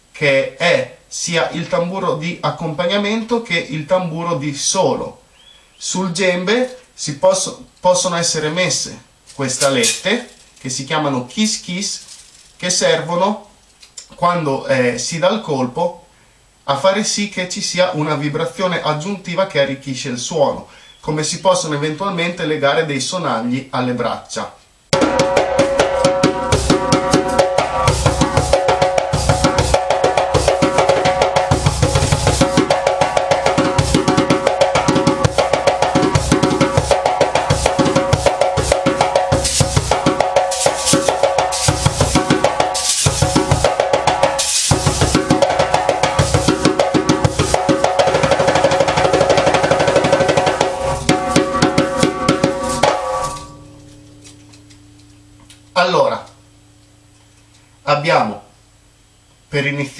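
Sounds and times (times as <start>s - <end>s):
hand drum fast rhythm: 24.9s - 53.2s
metal rattles buzzing on drum: 24.9s - 55.2s.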